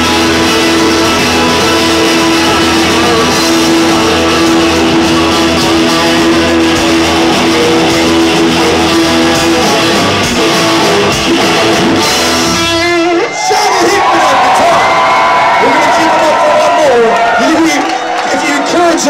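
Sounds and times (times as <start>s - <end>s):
crowd cheering: 0.0s - 19.0s
live rock band playing: 0.0s - 19.0s.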